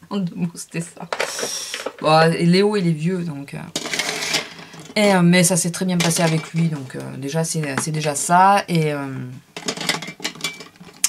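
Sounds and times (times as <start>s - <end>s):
small hard objects clattering: 1.0s - 2.1s.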